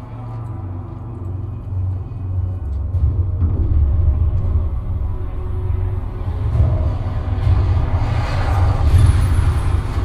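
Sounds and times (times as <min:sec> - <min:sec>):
film trailer music and effects: 0:00.0 - 0:10.0
deep bass rumble: 0:00.2 - 0:10.0.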